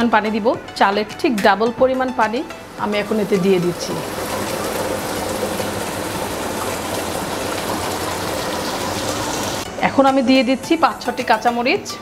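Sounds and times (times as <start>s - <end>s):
water pouring into a pot: 3.0s - 9.7s.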